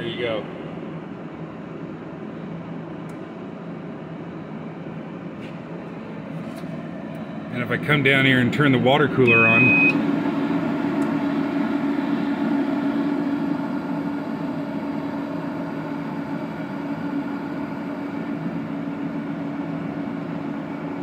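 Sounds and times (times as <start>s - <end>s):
welder cooling fans and pump humming: 0.0s - 21.0s.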